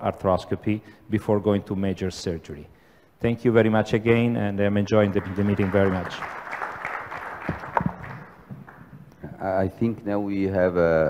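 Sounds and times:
audience applause: 5.0 - 8.9
sharp claps: 5.0 - 9.0.

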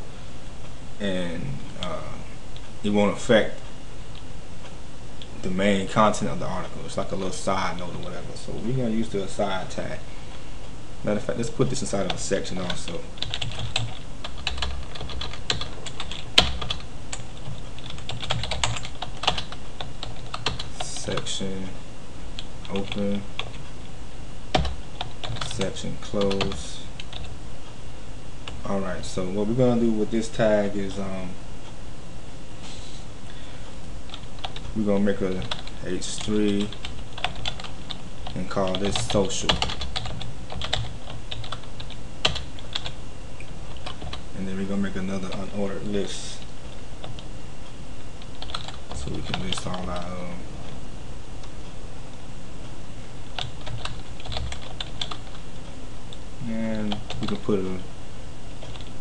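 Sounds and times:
low steady hum: 0.0 - 59.0
typing on computer keyboard: 12.1 - 21.2, 36.6 - 37.7, 38.7 - 42.9, 48.4 - 50.1, 53.4 - 55.4.

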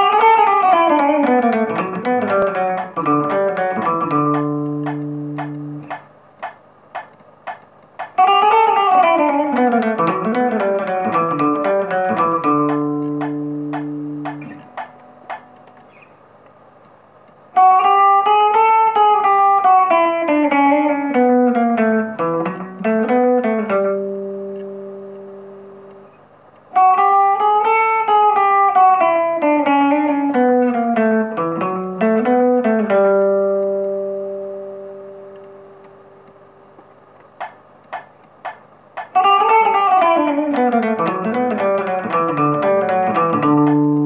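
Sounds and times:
electric guitar rockabilly lick: 0.0 - 44.0
guitar string clicks: 0.0 - 44.0.

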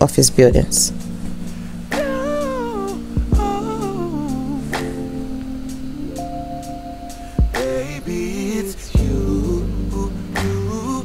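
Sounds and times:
soft low beat: 0.6 - 8.2, 9.0 - 10.8
r and b music: 0.7 - 11.0
sustained chords: 0.9 - 11.0
wordless sung vocal line: 1.7 - 11.0.

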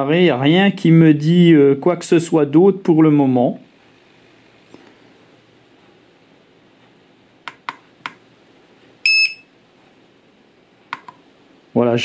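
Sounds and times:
short high-pitched beep: 9.0 - 9.5.

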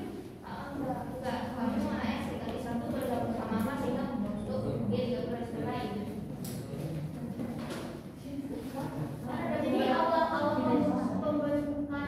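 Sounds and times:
indistinct talking: 8.2 - 12.0.

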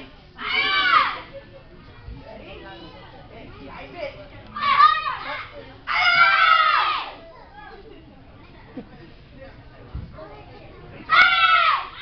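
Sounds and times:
faint background chatter: 0.0 - 12.0
child shouting: 0.4 - 1.2, 4.6 - 7.2, 11.1 - 12.0.

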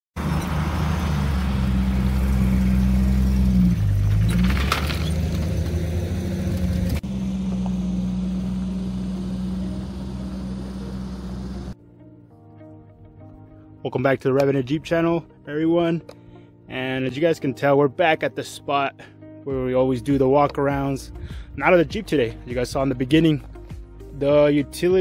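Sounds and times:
car engine running: 0.2 - 11.8.

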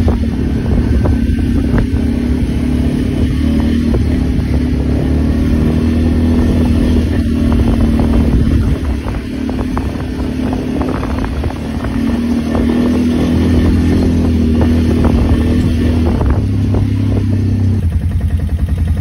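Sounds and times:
clatter: 0.0 - 19.0
quad bike engine running: 0.0 - 19.0.

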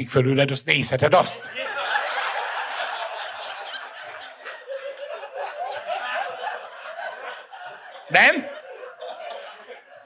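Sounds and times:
audience laughter: 1.4 - 10.0.

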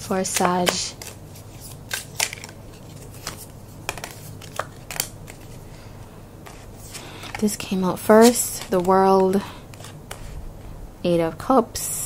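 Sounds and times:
steady low hum: 0.0 - 12.0
cards shuffled and dealt: 0.1 - 5.6, 6.4 - 10.4
card snaps and taps: 3.2 - 5.4.

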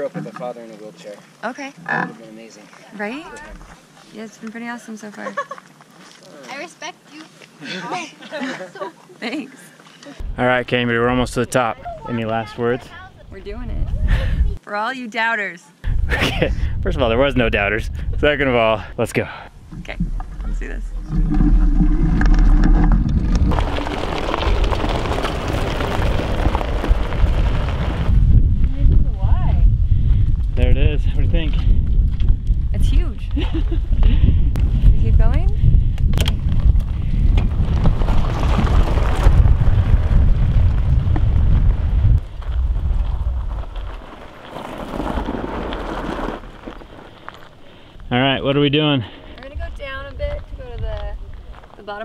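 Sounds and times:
wind buffeting microphone: 10.2 - 14.6, 15.8 - 44.2, 48.0 - 51.8
wheels rumbling over gravel: 19.9 - 29.1, 36.4 - 48.6.

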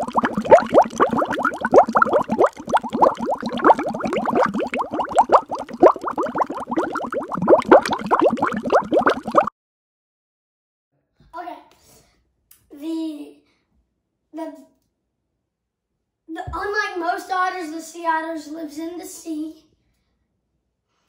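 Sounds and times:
water bubbling and gurgling: 0.0 - 9.5.

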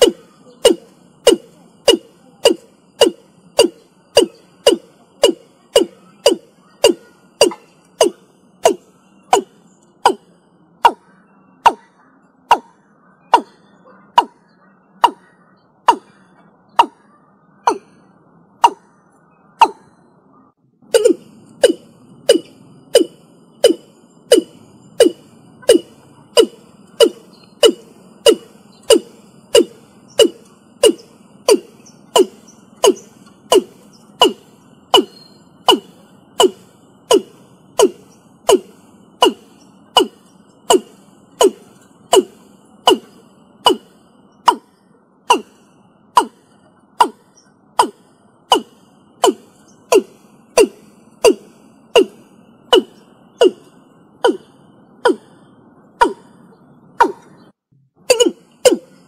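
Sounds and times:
bird calling sharp notes: 0.0 - 59.0.

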